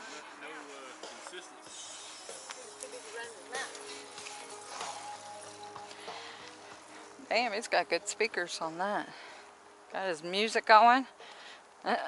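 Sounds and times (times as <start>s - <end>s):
faint music with voices from speaker: 0.0s - 11.2s.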